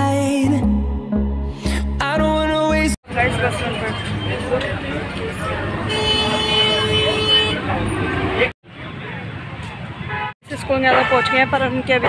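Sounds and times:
bus running in traffic: 3.0s - 12.0s
vehicle horn long note: 5.9s - 7.7s.

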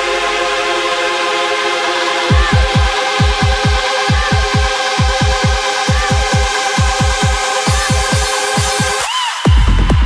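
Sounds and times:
sustained synthesizer chord: 0.0s - 6.7s
low bass: 0.0s - 7.4s, 9.5s - 10.0s.

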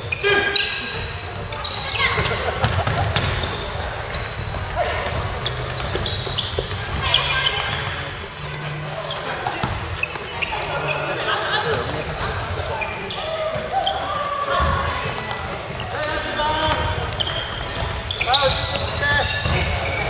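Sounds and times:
sneaker squeaks: 0.0s - 20.0s
basketball bouncing: 0.9s - 8.0s, 9.5s - 10.2s.

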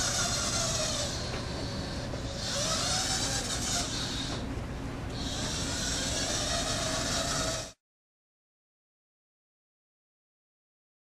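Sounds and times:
robot drive motors whining: 0.0s - 4.5s, 5.1s - 7.8s.

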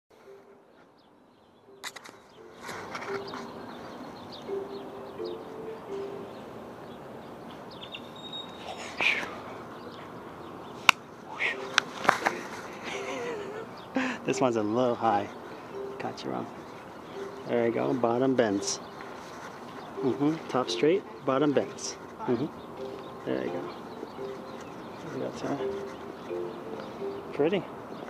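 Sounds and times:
camera being bumped: 1.8s - 2.2s
distant voices: 2.2s - 28.0s.

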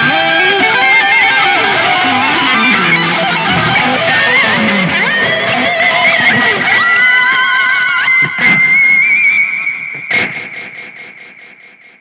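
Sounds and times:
electric guitar with delay echoes: 0.0s - 12.0s.

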